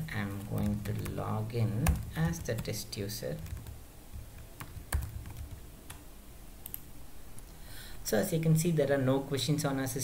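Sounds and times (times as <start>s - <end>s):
computer keyboard keystrokes: 1.8s - 2.8s, 3.4s - 3.8s, 4.4s - 6.0s, 6.6s - 6.8s.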